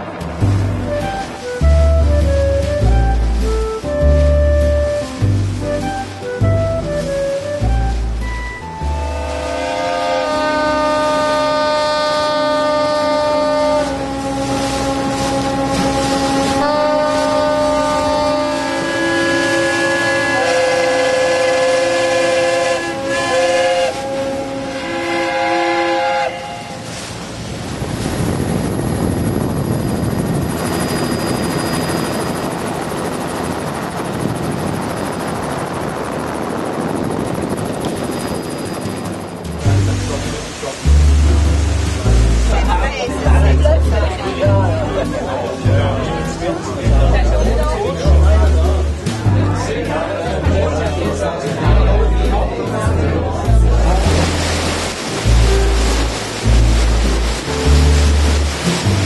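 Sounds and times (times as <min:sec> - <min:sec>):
steady rushing noise: 0:00.0 - 0:09.6, 0:26.5 - 0:43.8, 0:53.7 - 0:59.0
ships' horns and steam whistles: 0:00.5 - 0:27.3, 0:28.0 - 0:32.7, 0:35.5 - 0:39.4.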